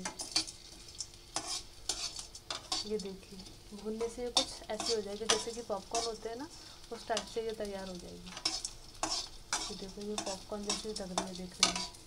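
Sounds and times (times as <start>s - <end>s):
metal spatula scraping a pan: 0.0s - 12.0s.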